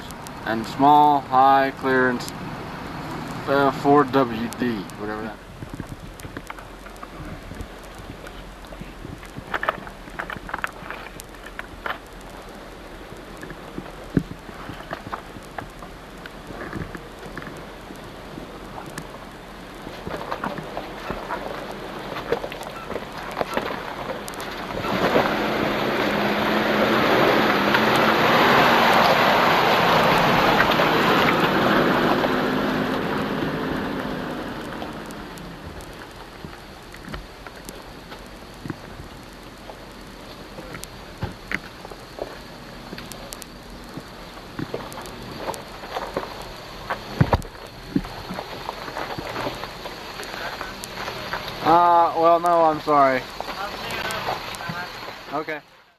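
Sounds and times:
stones crackling under tyres: 0.0s - 55.9s
truck engine hum: 0.0s - 55.9s.

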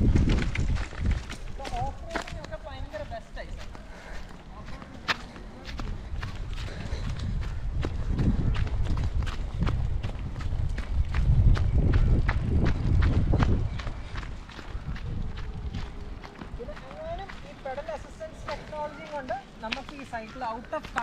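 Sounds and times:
running footsteps on gravel: 0.0s - 21.0s.

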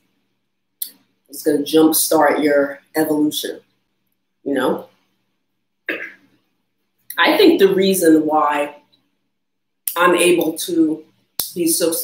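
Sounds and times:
woman coughing: 5.9s - 6.2s.

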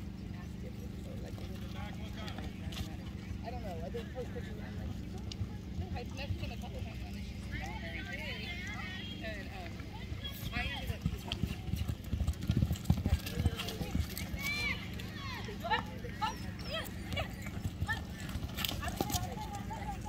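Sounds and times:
faint voices: 0.0s - 20.0s
horse galloping on dirt: 0.0s - 20.0s.

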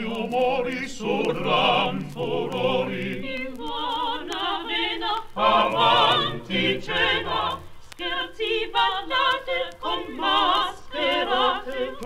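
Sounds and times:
choir singing with vibrato: 0.0s - 12.0s.

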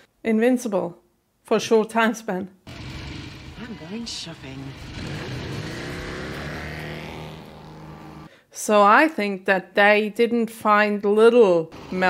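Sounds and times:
motorcycle engine running: 2.7s - 8.3s.

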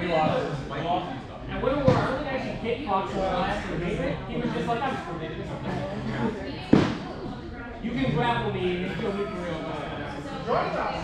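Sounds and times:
people talking in a hall: 0.0s - 11.0s.

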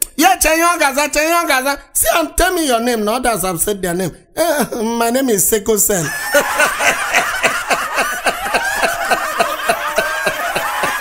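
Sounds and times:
people laughing: 6.0s - 11.0s.

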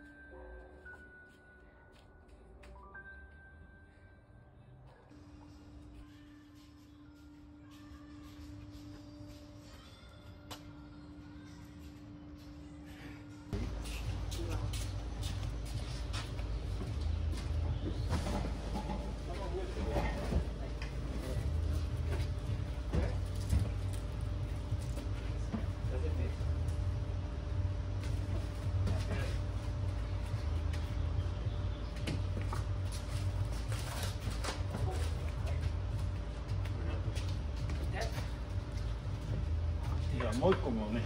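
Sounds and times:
steady low rumble: 13.4s - 41.0s.

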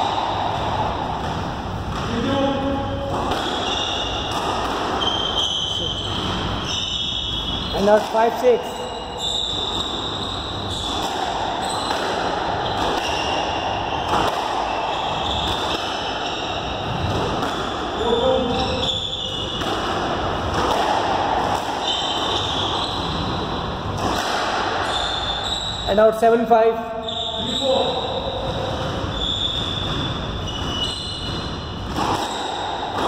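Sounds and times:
racket hitting squash ball: 0.0s - 25.8s, 27.0s - 33.0s
steady background noise: 0.0s - 33.0s.

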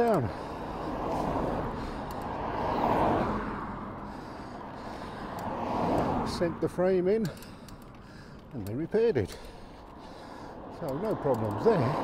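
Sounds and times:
van passing road noise: 0.0s - 12.0s.

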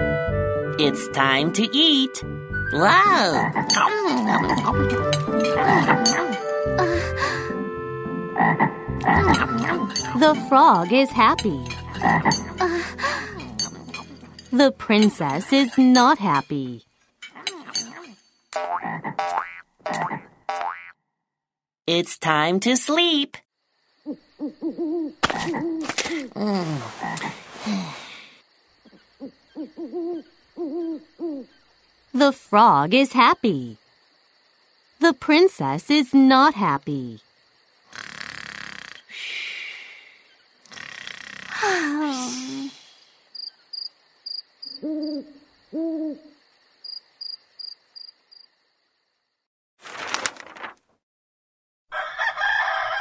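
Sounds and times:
cartoon frog croaking: 2.9s - 4.9s, 5.5s - 7.0s, 8.3s - 10.0s, 11.8s - 14.0s, 17.3s - 21.0s, 24.0s - 25.9s, 37.8s - 39.2s, 40.6s - 42.0s
cricket chirps: 22.9s - 49.5s
owl hooting: 24.0s - 25.8s, 28.9s - 31.7s, 44.6s - 46.4s.

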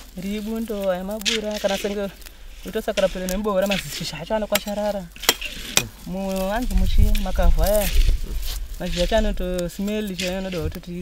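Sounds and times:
hoe chopping into soil: 3.0s - 6.0s.

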